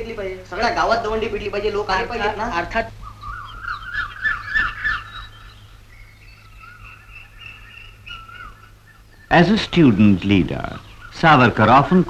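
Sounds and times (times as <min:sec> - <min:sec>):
birds chirping: 0:00.0 - 0:12.0
bird whistling notes: 0:03.0 - 0:11.2.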